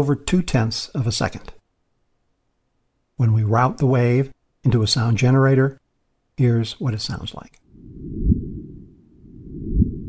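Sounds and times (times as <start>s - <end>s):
low rumble: 7.6s - 10.0s.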